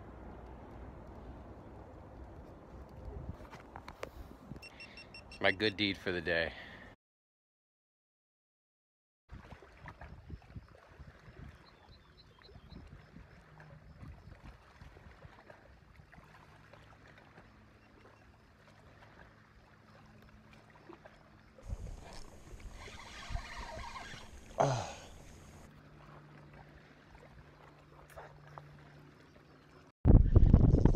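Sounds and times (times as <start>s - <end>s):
light water sounds: 0.0s - 5.1s, 9.3s - 29.9s.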